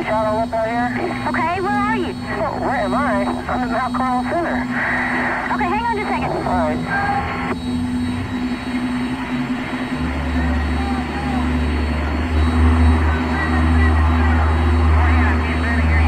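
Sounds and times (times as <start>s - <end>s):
constant hum: 0.0s - 16.0s
deep low drone: 0.0s - 16.0s.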